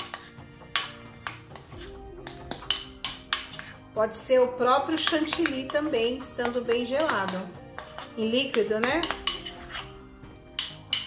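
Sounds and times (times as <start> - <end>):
soft background music: 0.0 - 11.0
spoon clinking in glass bowl: 2.5 - 3.8, 6.7 - 9.9, 10.5 - 11.0.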